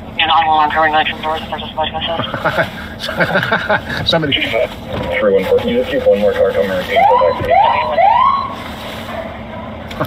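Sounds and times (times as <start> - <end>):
steady hum: 0.0 - 8.8
police siren whoop: 6.8 - 8.6.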